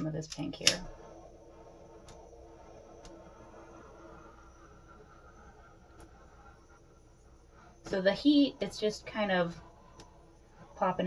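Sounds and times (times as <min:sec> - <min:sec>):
butane torch flame hissing: 0:00.0 - 0:11.0.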